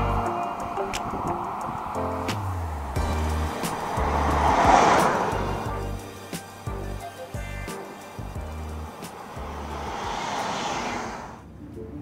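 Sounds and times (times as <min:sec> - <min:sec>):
background music with a beat: 0:00.0 - 0:10.4
car driving past: 0:00.2 - 0:06.7, 0:07.8 - 0:11.5.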